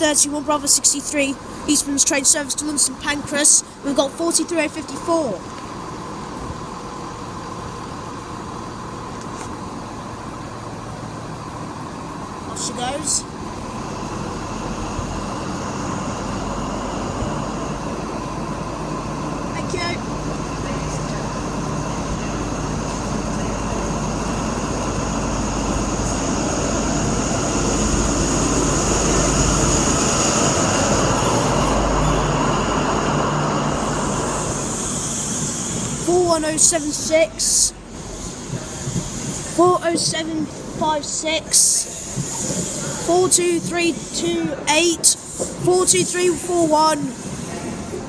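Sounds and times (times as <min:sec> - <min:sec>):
coaches rumbling on rails: 0:00.0 - 0:48.0
diesel train engine accelerating: 0:00.0 - 0:48.0
steady high whine: 0:00.0 - 0:48.0.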